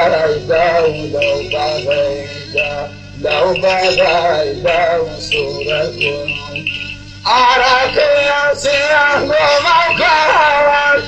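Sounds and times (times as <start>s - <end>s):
instrumental accompaniment: 0.0s - 11.0s
man singing: 0.0s - 11.0s.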